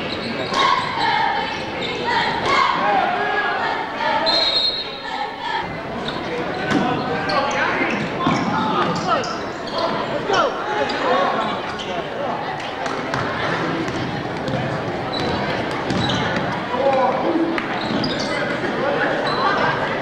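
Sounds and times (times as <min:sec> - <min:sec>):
sneaker squeaks: 0:00.0 - 0:02.6, 0:04.2 - 0:05.1, 0:06.0 - 0:12.1, 0:13.9 - 0:16.6, 0:17.6 - 0:19.8
voices and shouts echoing: 0:00.0 - 0:20.0.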